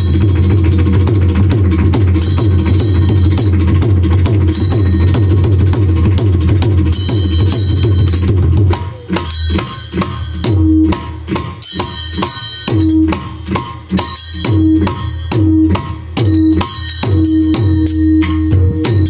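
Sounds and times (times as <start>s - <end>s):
bright metallic ring: 0.0s - 1.3s, 2.1s - 6.1s, 6.8s - 19.0s
barrel drum played by hand: 0.0s - 19.0s.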